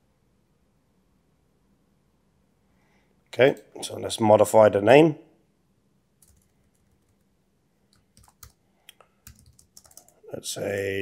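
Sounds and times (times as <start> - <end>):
keyboard keystrokes: 6.2 - 7.2, 7.9 - 8.6, 9.2 - 10.1.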